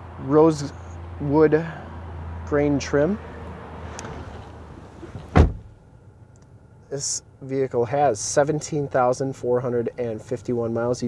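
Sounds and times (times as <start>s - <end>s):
car door shutting: 3.9s - 5.8s.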